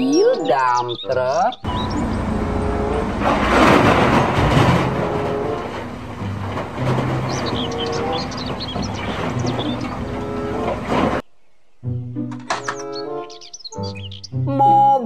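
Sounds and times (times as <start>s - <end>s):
diesel engine running: 1.7s - 11.2s
earth pouring into truck bed: 2.8s - 11.2s.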